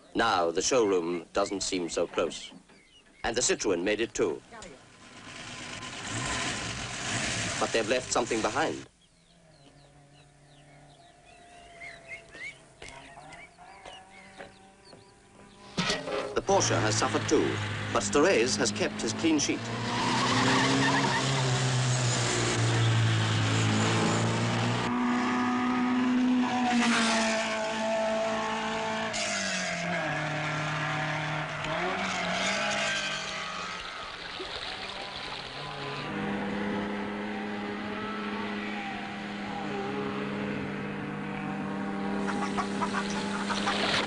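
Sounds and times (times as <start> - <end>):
rally car engines: 3.6 - 9.3, 13.1 - 44.0.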